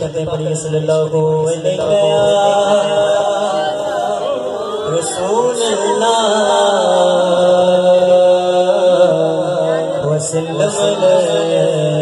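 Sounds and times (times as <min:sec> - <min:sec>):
man singing a long note: 0:00.2 - 0:12.0.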